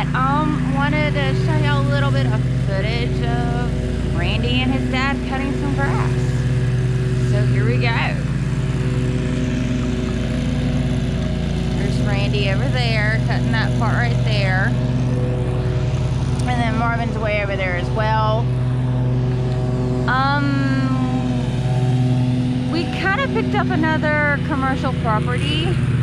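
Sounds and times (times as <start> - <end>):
lawn mower engine hum: 0.0 - 26.0
person speaking: 16.4 - 18.4.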